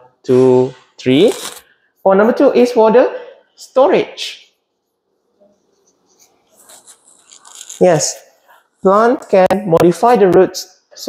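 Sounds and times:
marker pen writing on whiteboard: 4.7s - 10.2s.

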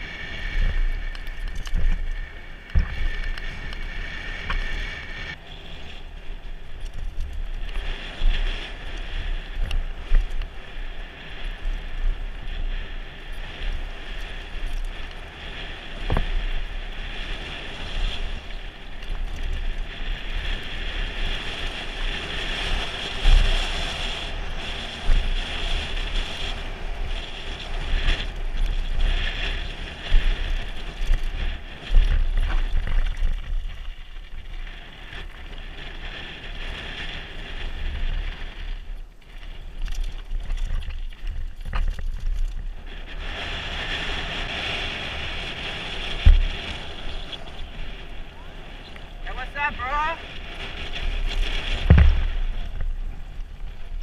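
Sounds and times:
mountain bike rolling on gravel: 0.0s - 54.0s
wind buffeting microphone: 0.0s - 54.0s
bike thumping over bumps: 0.6s - 3.7s, 15.8s - 17.8s, 51.0s - 54.0s.

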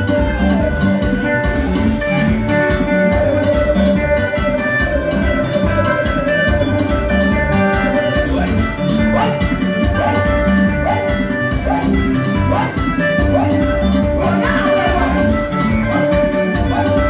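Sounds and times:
loud live band music: 0.0s - 17.0s.

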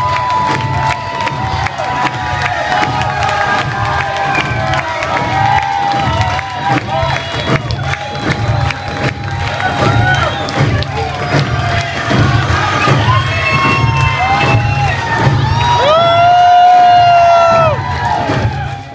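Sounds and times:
audience cheering and clapping: 0.0s - 18.9s
shouts and whoops: 0.0s - 18.9s.

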